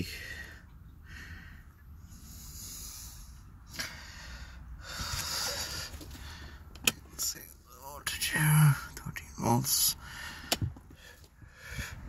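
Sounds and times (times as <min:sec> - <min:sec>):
person breathing: 0:00.2 - 0:06.8, 0:10.0 - 0:12.0.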